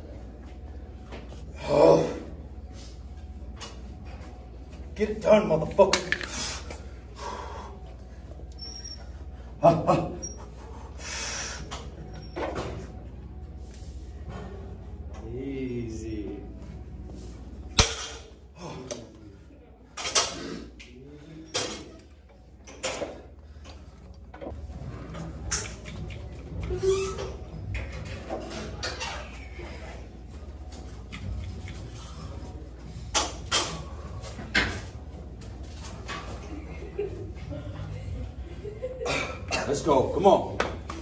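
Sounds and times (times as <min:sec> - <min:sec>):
steady low hum: 0:00.0 - 0:28.8.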